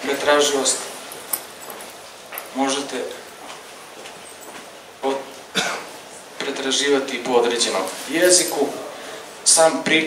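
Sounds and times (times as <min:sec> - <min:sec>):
man clearing throat and coughing: 0:05.5 - 0:06.0.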